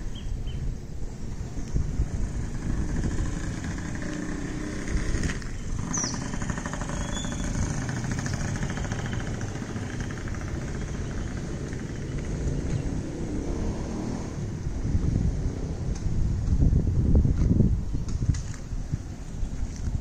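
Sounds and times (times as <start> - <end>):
bird chirp: 0.0 - 0.8, 5.4 - 13.2
low rumbling noise: 0.0 - 20.0
motorcycle engine buzzing by: 1.8 - 16.6.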